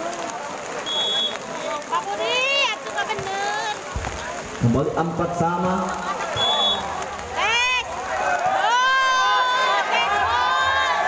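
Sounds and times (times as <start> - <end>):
spectators shouting: 4.9 - 11.0.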